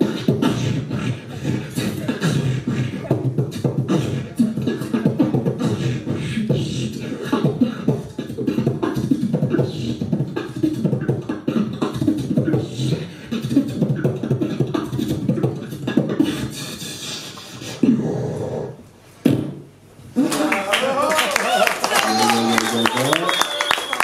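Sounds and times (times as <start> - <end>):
beatboxing: 0.0 - 20.6.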